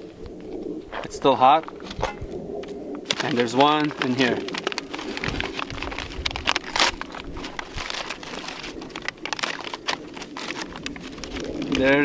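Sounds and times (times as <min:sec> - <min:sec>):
paper rustling and crinkling: 0:03.0 - 0:12.0.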